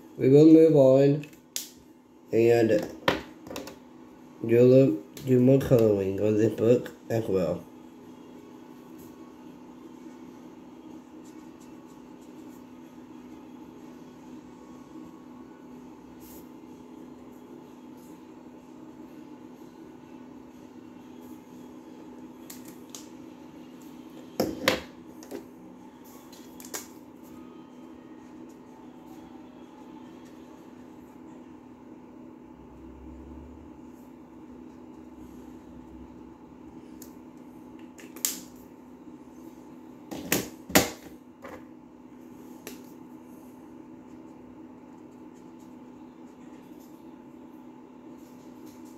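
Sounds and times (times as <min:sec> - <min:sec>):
steady low room hum: 0:00.0 - 0:48.9.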